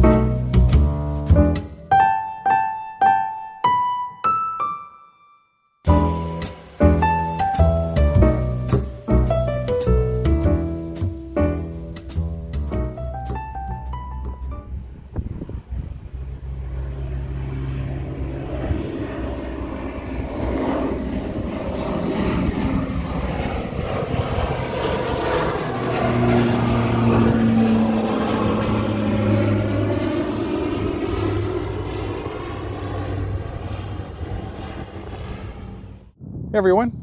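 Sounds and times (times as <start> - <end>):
propeller plane engine drone: 0.0 - 4.2, 5.9 - 37.0.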